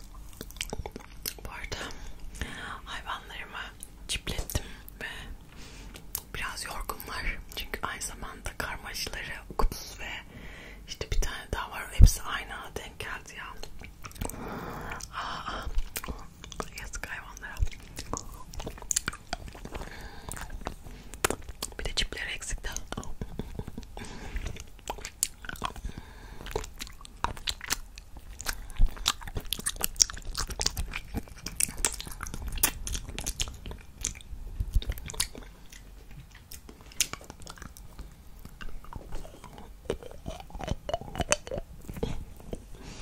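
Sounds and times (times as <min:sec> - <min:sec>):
licking and sucking candy: 0:13.6 - 0:42.8.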